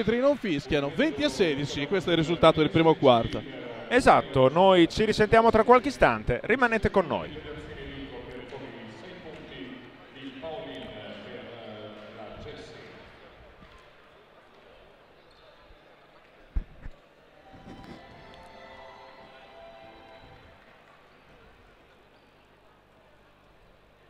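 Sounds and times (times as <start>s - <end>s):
crowd voices: 0.0s - 6.0s, 10.8s - 24.0s
music over loudspeakers: 17.4s - 20.6s.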